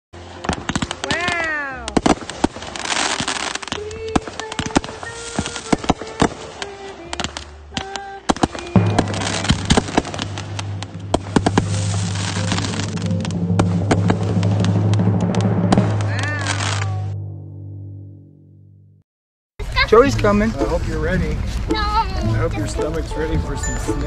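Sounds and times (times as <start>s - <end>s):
fireworks popping and crackling: 0.2s - 17.0s
steady low musical tone: 6.3s - 19.0s, 19.9s - 24.0s.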